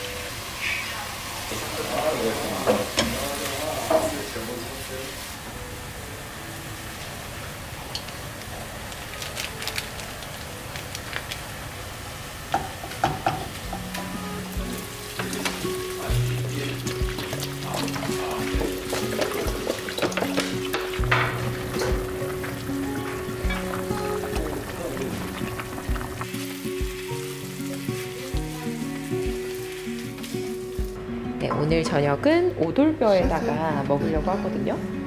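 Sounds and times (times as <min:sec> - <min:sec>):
soft background music: 0:00.0 - 0:12.0, 0:12.6 - 0:35.0
meat sizzling in a wok: 0:00.0 - 0:31.0.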